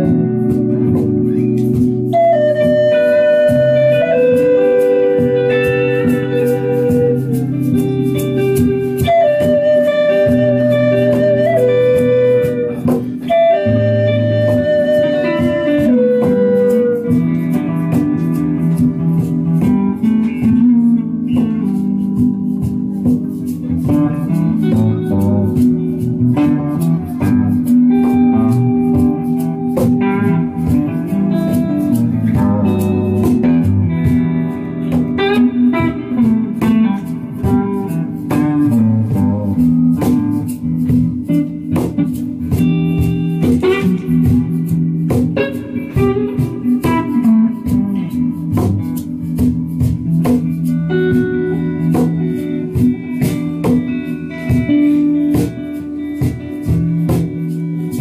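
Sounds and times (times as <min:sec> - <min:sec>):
electric guitar lead: 0:00.0 - 0:58.0
percussion clicking: 0:00.0 - 0:58.0.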